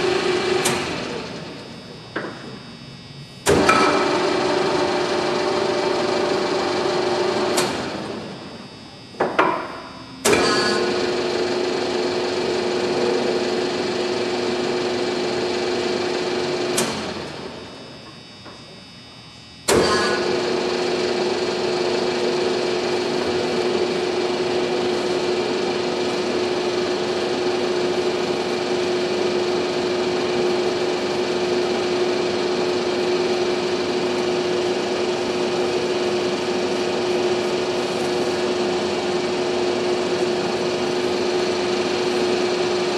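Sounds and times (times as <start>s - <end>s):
pipe threader motor humming: 0.0s - 18.7s, 19.6s - 42.9s.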